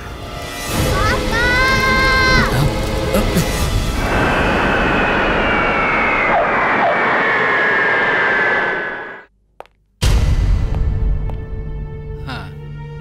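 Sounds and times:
jet engines whining: 2.8s - 9.3s.

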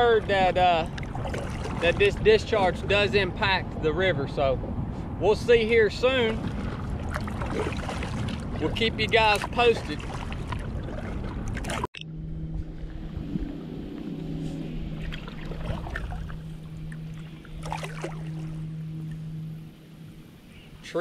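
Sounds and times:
wind on microphone: 0.0s - 20.8s
steady low hum: 0.0s - 21.0s
water splashing off paddle: 6.4s - 11.9s, 14.9s - 18.6s.

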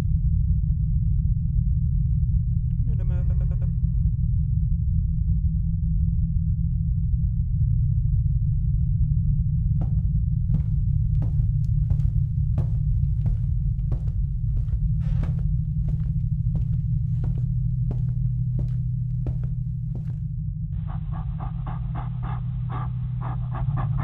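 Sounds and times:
steady low drone: 0.0s - 24.0s
footsteps: 9.8s - 20.3s.

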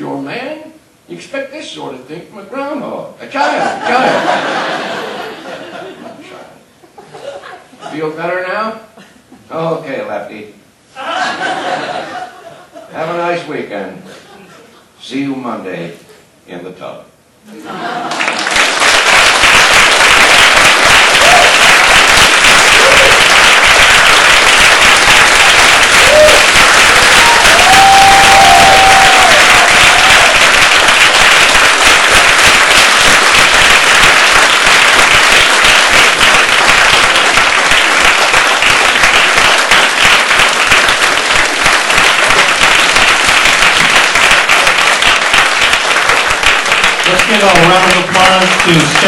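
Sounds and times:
audience applauding: 17.9s - 49.0s
crowd cries: 21.1s - 21.8s, 22.6s - 23.4s, 25.4s - 30.7s.

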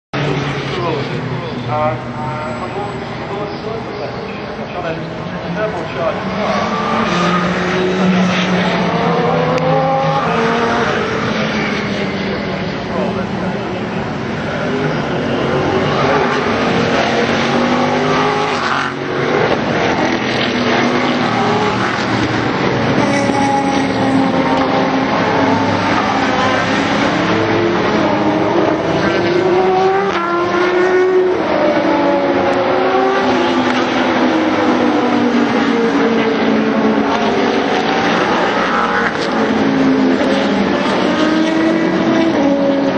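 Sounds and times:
race cars passing: 0.2s - 42.9s.

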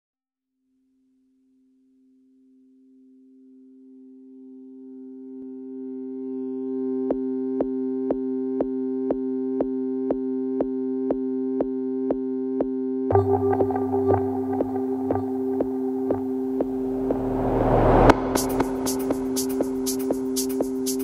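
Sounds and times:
steady dance beat: 13.1s - 21.0s
sustained synthesizer chord: 13.1s - 21.0s.

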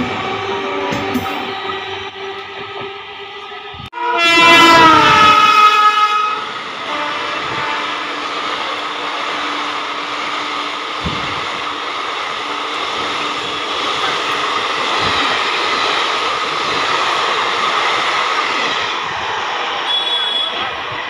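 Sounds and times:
train coaches rushing and rattling: 0.0s - 21.0s
train horn: 3.9s - 8.4s, 19.8s - 20.7s.

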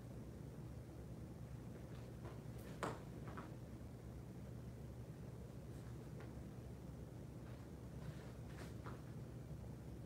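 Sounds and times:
faint room hum: 0.0s - 10.0s
movement on foam mats: 7.4s - 9.3s.

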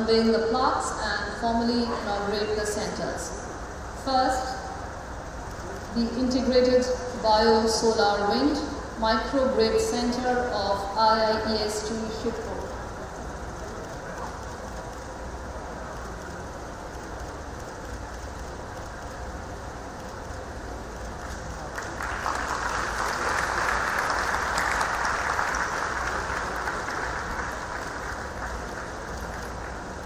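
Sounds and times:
large hall background noise: 0.0s - 30.0s
audience applauding: 21.6s - 30.0s.

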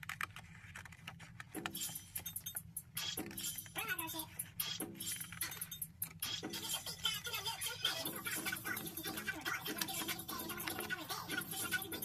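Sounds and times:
scissors snipping paper: 0.0s - 2.3s, 8.4s - 11.9s.

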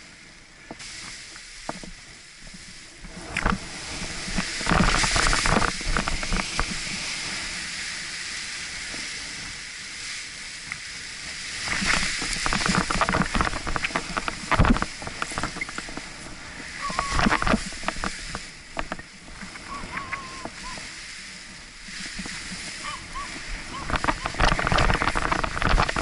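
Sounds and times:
wind on camera microphone: 0.0s - 26.0s.

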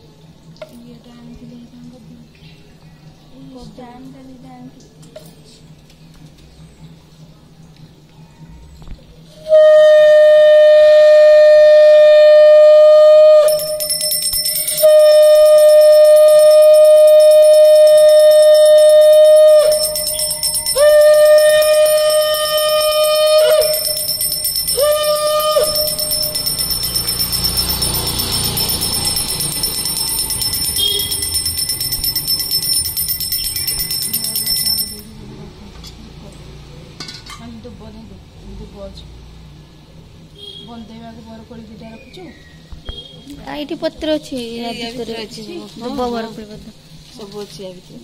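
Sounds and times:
conch shell blasts: 9.4s - 34.1s
hand bell ringing rapidly: 13.4s - 35.2s.

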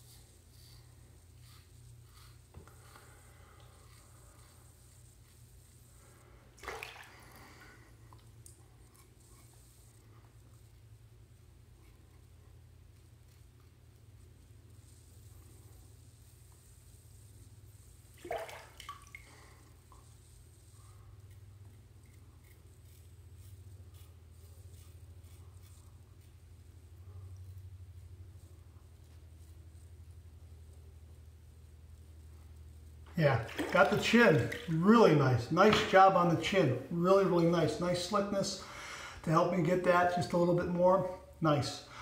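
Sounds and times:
steady low hum: 0.0s - 42.0s
razor scraping stubble: 21.0s - 26.6s.

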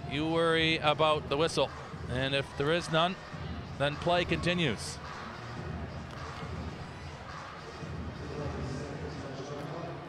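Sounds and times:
indoor arena murmur: 0.0s - 10.0s.

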